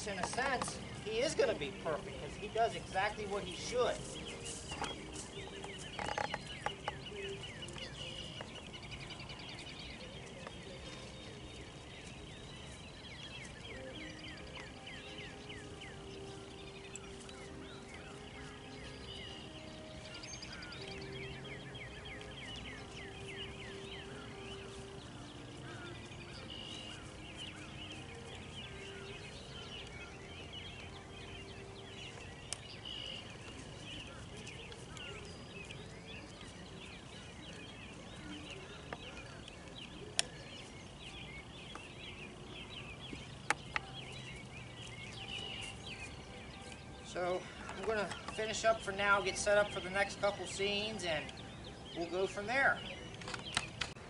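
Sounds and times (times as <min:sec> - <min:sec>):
birds chirping: 0:00.0 - 0:54.0.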